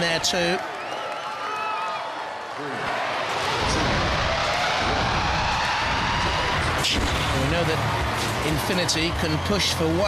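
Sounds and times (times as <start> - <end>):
arena crowd din: 0.0 - 10.0.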